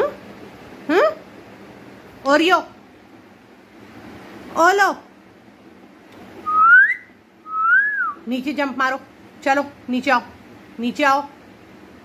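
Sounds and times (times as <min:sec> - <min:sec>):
person whistling rising note: 0:06.4 - 0:08.2.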